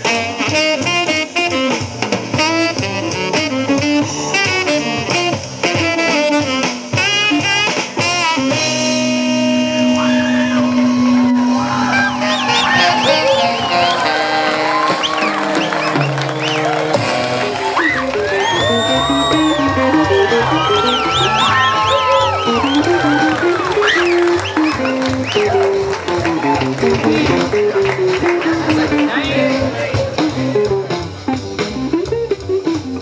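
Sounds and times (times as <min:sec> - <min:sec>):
electric guitar: 0:00.0 - 0:33.0
double bass walking line: 0:08.6 - 0:33.0.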